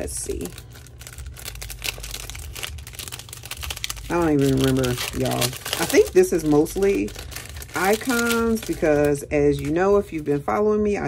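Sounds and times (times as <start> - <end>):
cellophane bag crinkling: 0.0 - 10.5.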